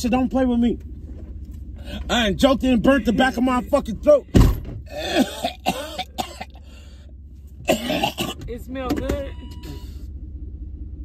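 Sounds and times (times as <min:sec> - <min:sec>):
low car cabin hum: 0:00.0 - 0:11.0
man coughing: 0:04.9 - 0:06.7, 0:07.6 - 0:08.4.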